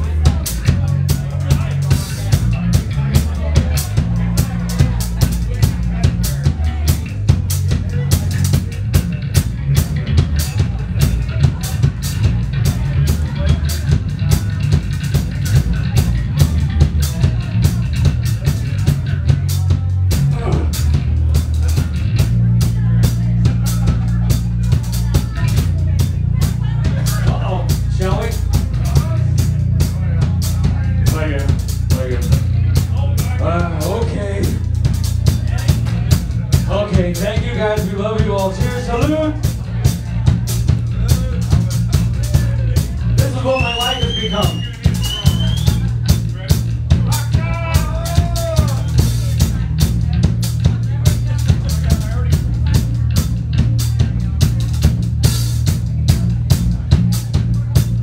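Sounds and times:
bass line: 0.0 - 58.0
drum kit beat: 0.0 - 58.0.

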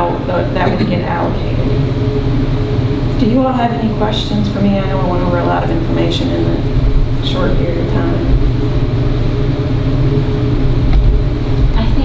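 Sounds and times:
low rumble of room noise: 0.0 - 12.0.

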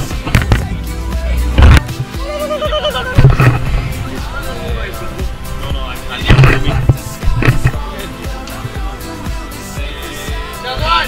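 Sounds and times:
background music: 0.0 - 11.0
knocking and scraping: 3.2 - 4.1, 5.6 - 7.9.

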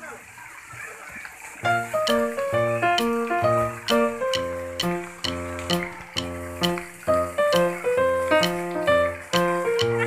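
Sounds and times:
water splashing in a pool: 0.0 - 10.0
acoustic guitar music: 1.7 - 10.0.

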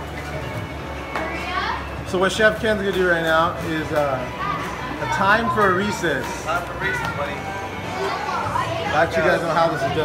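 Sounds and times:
indistinct chatter of people: 0.0 - 10.0.

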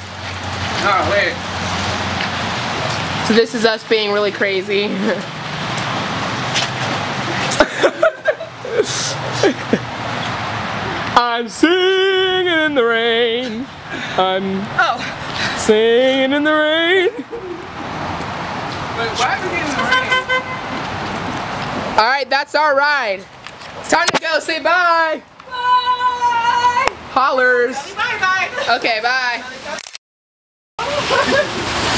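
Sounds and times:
steady outdoor noise: 0.0 - 30.0, 30.8 - 31.9
heavy rain hissing: 0.1 - 11.0, 30.8 - 31.9
car horn short toots: 19.8 - 20.7.

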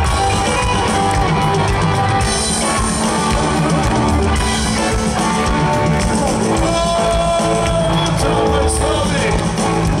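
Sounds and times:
drum kit: 0.0 - 10.0
electric guitar: 0.0 - 10.0
live rock band playing: 0.0 - 10.0.

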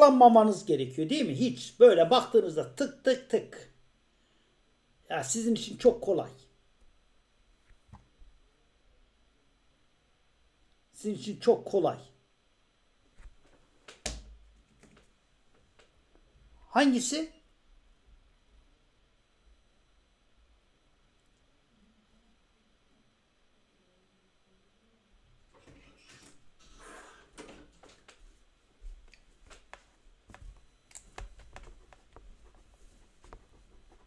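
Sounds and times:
soft rustle: 28.2 - 34.0
computer mouse clicks: 29.1 - 32.2.

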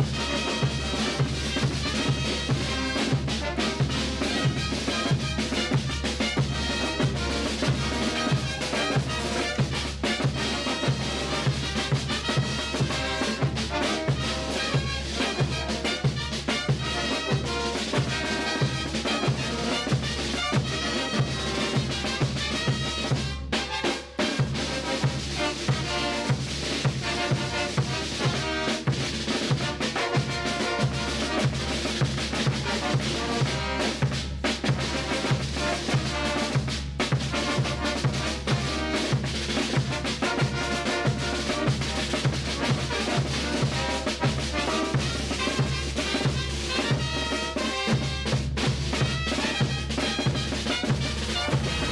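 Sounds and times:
bass drum and snare drums: 0.0 - 51.9
brass band playing: 0.0 - 51.9.

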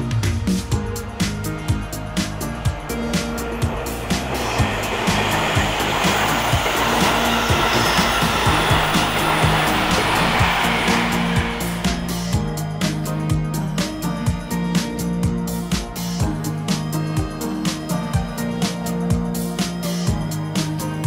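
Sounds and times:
passing train rushing: 0.0 - 14.4
background music with steady beat: 0.0 - 21.0.

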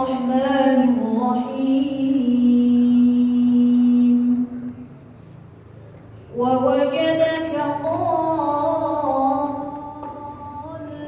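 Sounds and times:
person reciting through loudspeakers: 0.0 - 5.0, 6.3 - 11.0.

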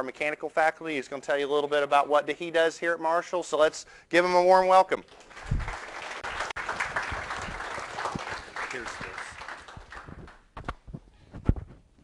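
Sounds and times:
audience applauding: 5.1 - 10.4.

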